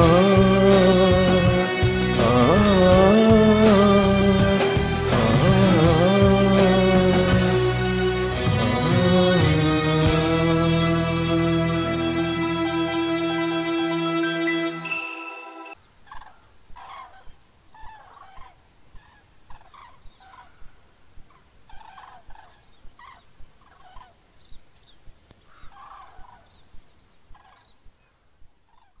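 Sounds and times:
held music chord: 0.0s - 15.8s
cranes calling: 16.1s - 24.2s, 25.4s - 27.8s, 28.7s - 29.0s.

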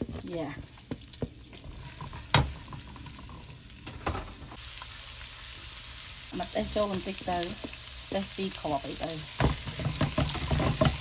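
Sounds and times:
garlic sizzling in a pan: 0.0s - 11.0s
spatula knocking on pan: 9.4s - 11.0s.

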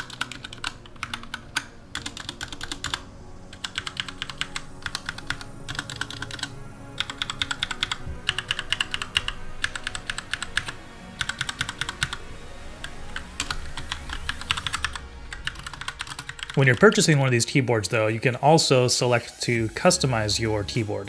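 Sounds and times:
mechanical keyboard typing: 0.0s - 12.2s, 13.1s - 17.1s.

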